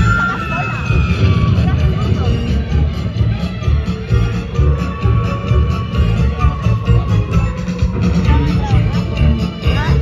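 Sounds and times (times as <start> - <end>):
heavy bass line: 0.0 - 10.0
parade music over speakers: 0.0 - 10.0.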